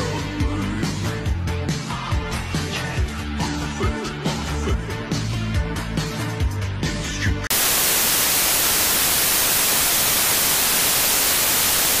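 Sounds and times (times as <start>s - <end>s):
television static hiss: 7.5s - 12.0s.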